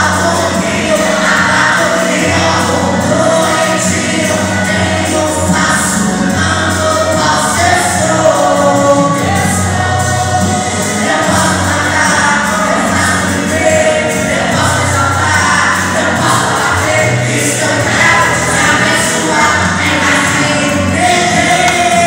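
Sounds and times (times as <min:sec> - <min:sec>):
man singing into microphone: 0:00.0 - 0:22.0
musical accompaniment: 0:00.0 - 0:22.0.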